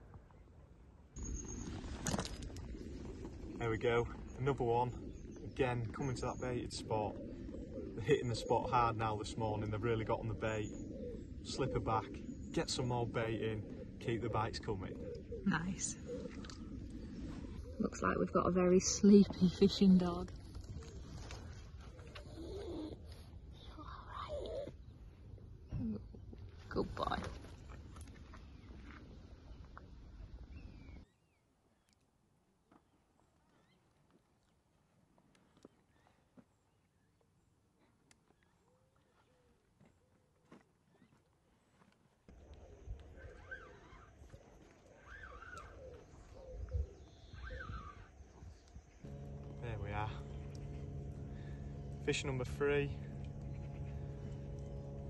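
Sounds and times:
short repeated bird calls: 0:43.1 - 0:48.2
low rumble: 0:49.0 - 0:55.0.

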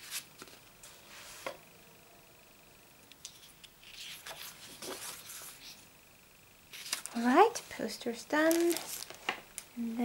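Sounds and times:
paper poster rustling: 0:03.2 - 0:05.8, 0:06.7 - 0:09.4.

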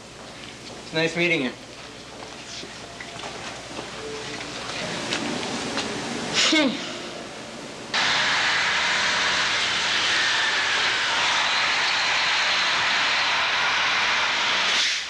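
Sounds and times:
loud rushing roar: 0:08.0 - 0:15.0.

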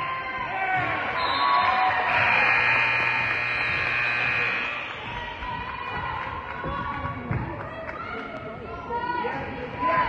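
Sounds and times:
faint crowd chatter: 0:00.0 - 0:10.0
scoreboard horn blaring: 0:01.2 - 0:04.9.

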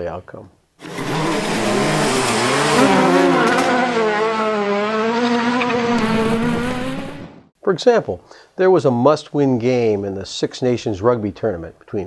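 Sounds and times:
race car engine at high revs: 0:00.8 - 0:07.5.

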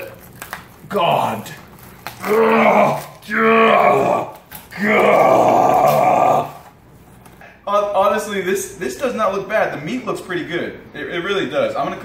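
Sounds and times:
person groaning: 0:02.2 - 0:06.7.

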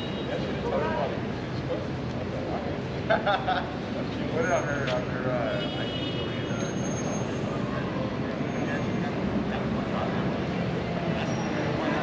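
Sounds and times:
indistinct chatter: 0:00.0 - 0:12.0
traffic rumble: 0:00.0 - 0:12.0.

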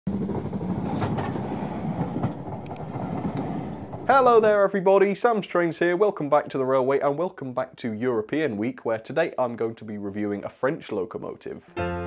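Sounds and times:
train rumbling past: 0:00.1 - 0:04.8.

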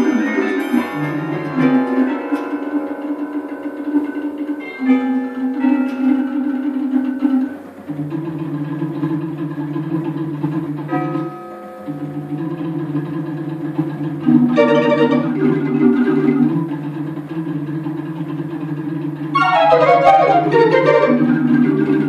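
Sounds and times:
tubular chimes ringing: 0:00.0 - 0:08.0
barrel organ low held notes: 0:00.0 - 0:22.0.

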